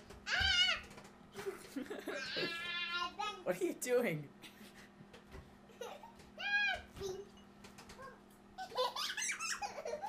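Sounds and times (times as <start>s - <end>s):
microwave humming: 0.0s - 10.0s
child giggling and laughing: 1.4s - 3.1s, 5.7s - 6.2s, 8.6s - 10.0s.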